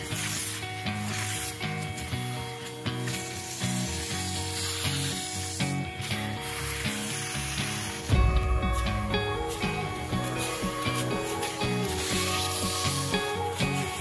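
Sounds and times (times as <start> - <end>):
background music: 0.0 - 14.0
shop vacuum running: 0.0 - 14.0.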